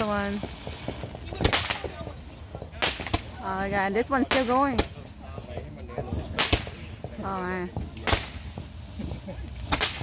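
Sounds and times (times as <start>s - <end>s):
firework crackling: 0.0s - 10.0s
loud firework crack: 0.0s - 10.0s.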